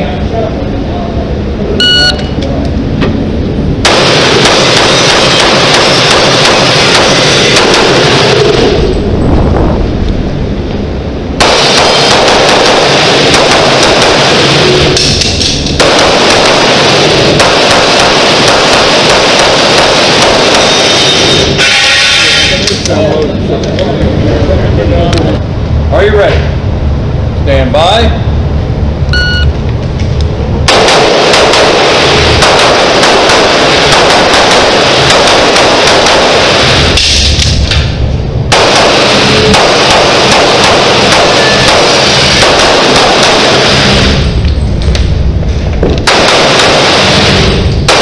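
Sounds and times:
shot timer beep: 1.8 - 2.4, 29.1 - 29.5
pistol gunfire: 3.8 - 8.5, 11.4 - 20.9, 30.6 - 36.9, 38.5 - 44.0, 46.0 - 48.0.

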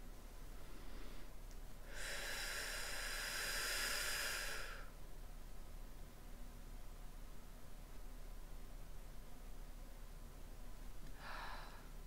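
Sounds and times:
person hissing out-breath: 1.9 - 4.9, 11.2 - 11.9.

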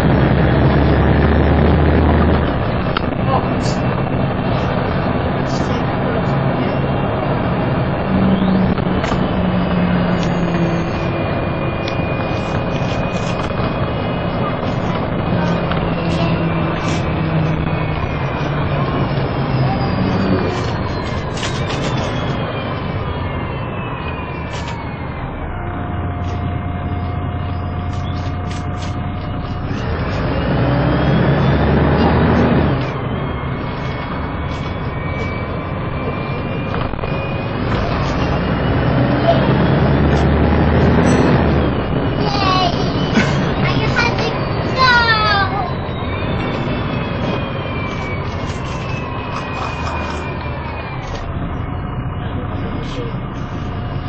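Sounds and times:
bus diesel engine: 0.0 - 54.0
transmission whine: 0.0 - 54.0.

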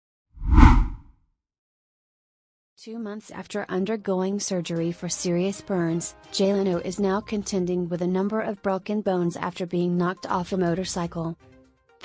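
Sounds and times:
whoosh with deep boom: 0.4 - 1.0.

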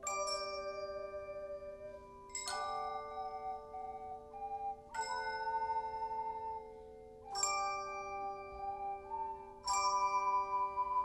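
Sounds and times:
ocarinas playing: 0.0 - 11.0.

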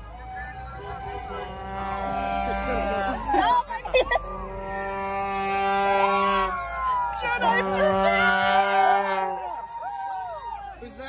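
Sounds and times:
rising cheer-like call: 0.3 - 11.0
plastic stadium horn buzzing: 0.8 - 3.3, 4.4 - 6.7, 7.4 - 9.6.

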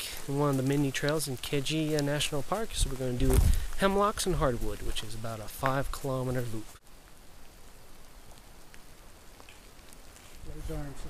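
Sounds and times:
raindrop ticks: 0.0 - 10.6
rain hiss: 0.0 - 11.0.

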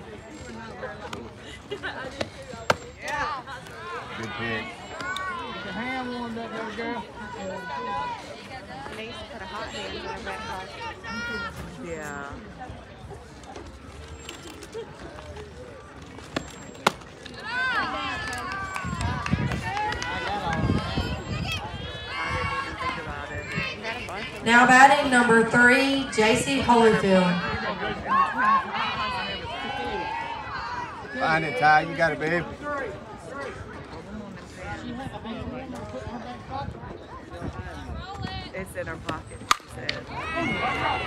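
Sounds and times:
spectators shouting and cheering: 17.3 - 32.6, 39.9 - 41.0.

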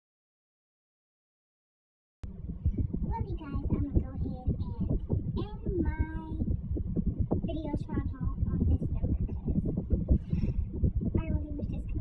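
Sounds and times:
uneven low rumble: 2.2 - 12.0.

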